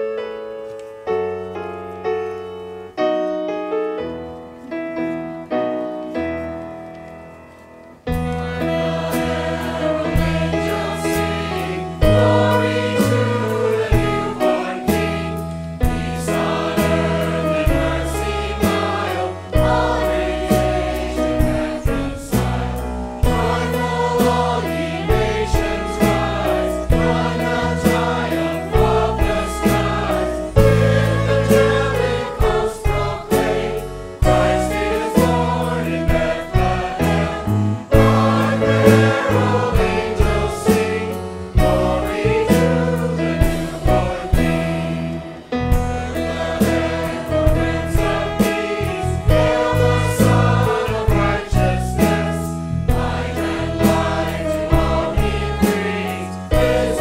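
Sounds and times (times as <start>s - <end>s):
instrumental accompaniment: 0.2s - 57.0s
mixed choir singing in harmony: 8.1s - 57.0s.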